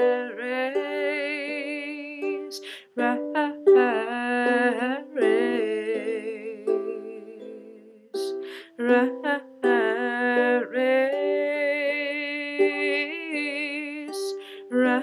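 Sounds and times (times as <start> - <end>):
ukulele: 0.0 - 15.0
woman singing with vibrato: 0.0 - 15.0.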